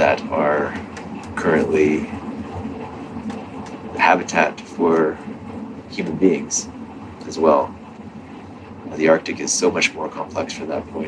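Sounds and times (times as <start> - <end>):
ship engines rumbling: 0.0 - 11.0
ventilation hiss: 0.0 - 11.0.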